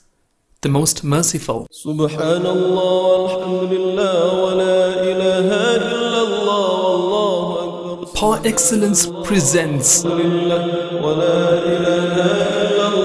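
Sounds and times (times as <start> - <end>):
melodic vocal chant: 1.7 - 13.0.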